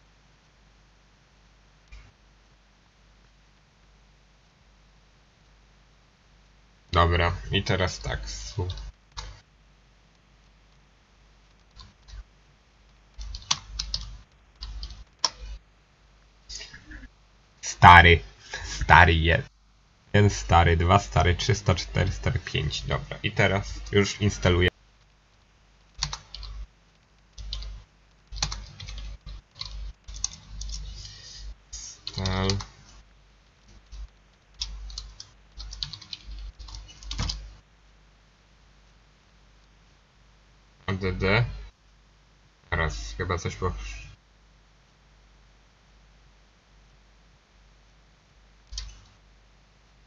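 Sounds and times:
computer keyboard keystrokes: 13.2s - 15.4s, 26.0s - 26.6s, 27.4s - 30.9s, 32.0s - 32.7s, 34.6s - 37.4s, 48.7s - 49.1s
computer keyboard key clicks: 26.0s - 26.5s, 34.6s - 37.4s.

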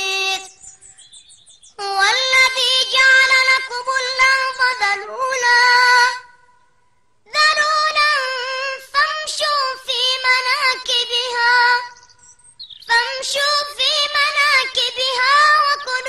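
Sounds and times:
boy chanting recitation: 0.0s - 6.5s, 7.3s - 12.0s, 12.8s - 16.0s.

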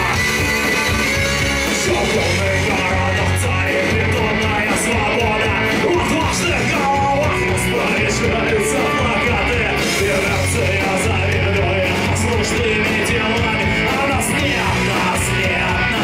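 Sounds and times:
drums and cymbals: 0.0s - 16.0s
electric guitar: 0.0s - 16.0s
man singing into microphone: 1.7s - 16.0s.

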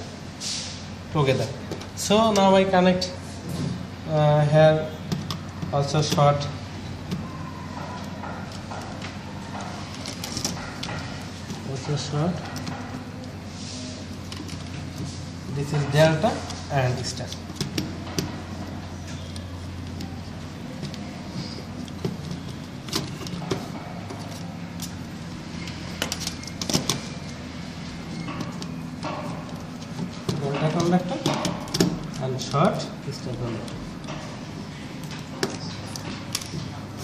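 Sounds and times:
low background hum: 0.0s - 37.0s.

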